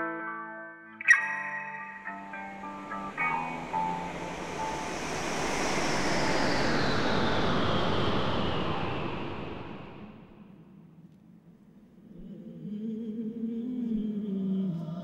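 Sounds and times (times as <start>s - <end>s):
held electric guitar notes: 0.0s - 6.2s
whoosh of noise: 2.0s - 10.9s.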